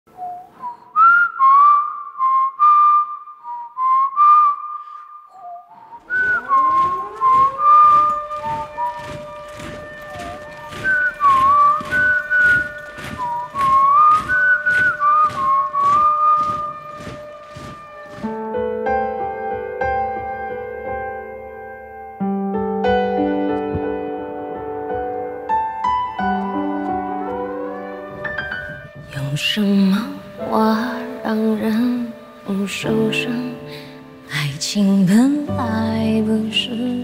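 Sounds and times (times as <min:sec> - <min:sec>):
man whistling a melody: 0:00.1 - 0:18.2
low sustained tone sliding upward: 0:05.4 - 0:18.4.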